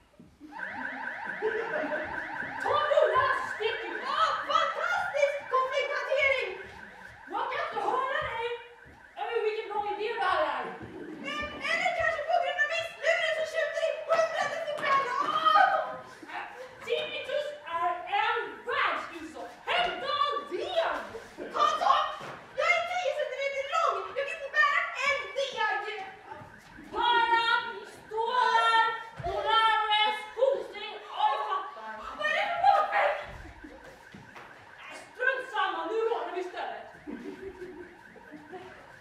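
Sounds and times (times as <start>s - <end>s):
voices: 0.0s - 39.0s
electronic alarm tone with sweeps: 0.4s - 39.0s.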